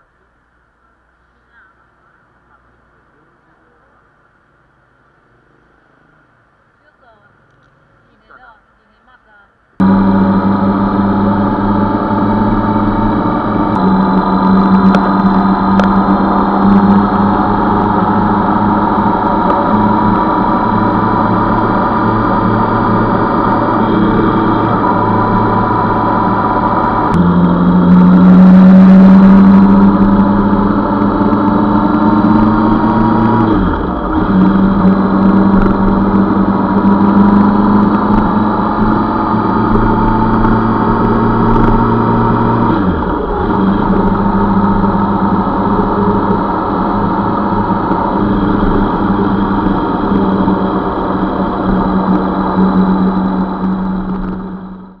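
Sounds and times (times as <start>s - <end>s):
motorcycle engine running: 9.8s - 55.0s.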